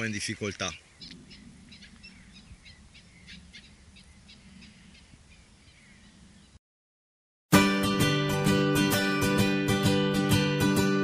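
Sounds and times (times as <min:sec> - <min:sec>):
faint bird chirps: 0:00.6 - 0:06.6.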